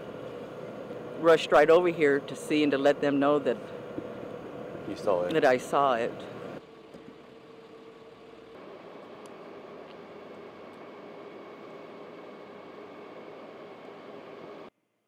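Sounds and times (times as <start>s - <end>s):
outdoor street noise: 0.0s - 14.7s
vehicle engine idling: 0.0s - 14.7s.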